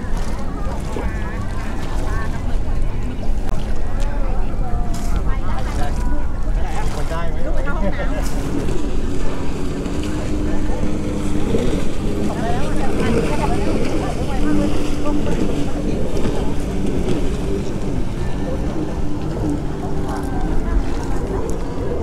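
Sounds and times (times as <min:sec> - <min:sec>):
boat motor rumbling: 0:00.0 - 0:22.0
people talking indistinctly: 0:00.0 - 0:22.0
wind over sea water: 0:00.0 - 0:22.0.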